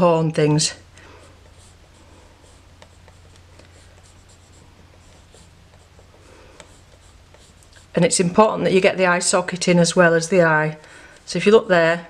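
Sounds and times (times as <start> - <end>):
pencil scratching on paper: 1.0 - 8.2.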